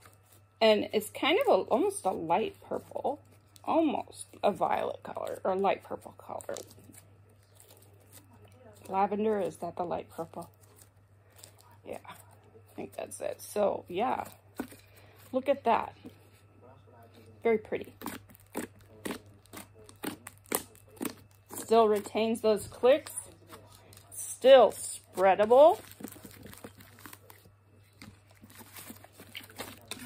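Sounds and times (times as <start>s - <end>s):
slime kneaded by hand: 17.9s - 22.1s.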